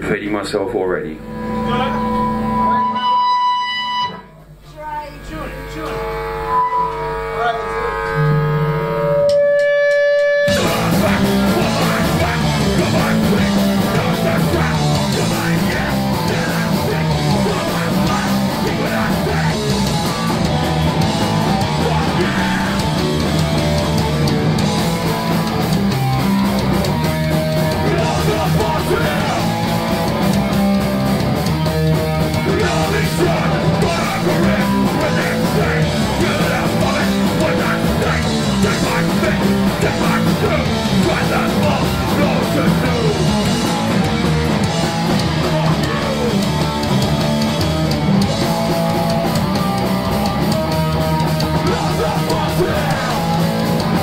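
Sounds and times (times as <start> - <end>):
held electric guitar notes: 1.1 - 4.6, 5.2 - 54.0
punk band playing live: 9.0 - 54.0.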